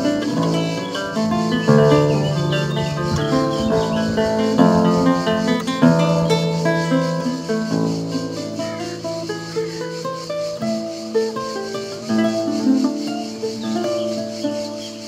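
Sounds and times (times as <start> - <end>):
cicadas buzzing: 0.0 - 15.0
harp guitar fingerpicked melody: 0.0 - 15.0.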